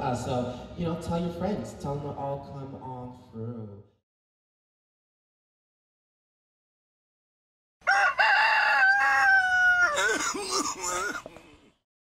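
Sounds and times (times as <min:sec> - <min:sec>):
rooster crowing: 0:07.8 - 0:10.2.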